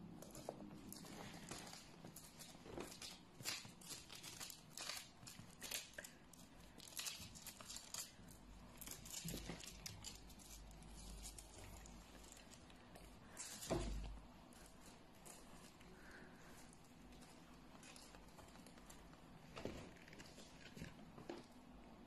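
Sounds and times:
fabric rustling and scratching: 0:00.2 - 0:22.0.

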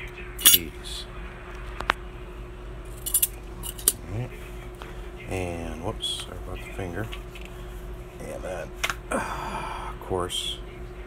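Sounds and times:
keys jingling: 0:03.0 - 0:04.0.

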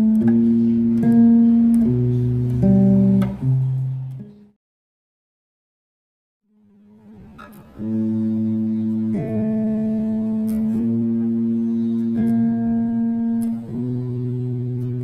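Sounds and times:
electric bass held notes: 0:00.0 - 0:04.6, 0:06.5 - 0:15.0.

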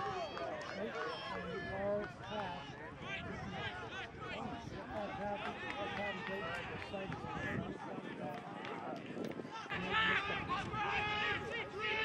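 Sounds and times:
voices shouting and calling out: 0:00.0 - 0:12.0.

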